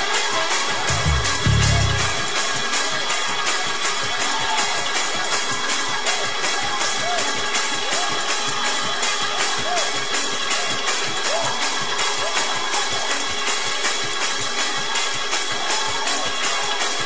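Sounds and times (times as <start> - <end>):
drums: 0.0 - 17.0
tambourines: 0.0 - 17.0.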